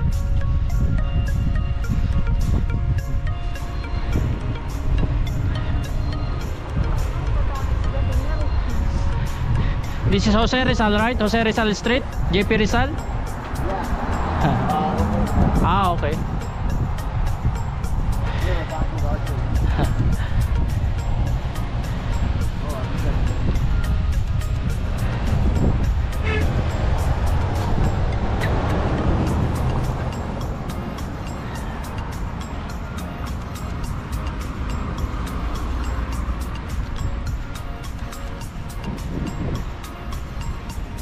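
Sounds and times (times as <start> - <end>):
cars passing: 0.0 - 41.0
music with steady tick: 0.0 - 41.0
wind rumbling on microphone: 0.0 - 41.0.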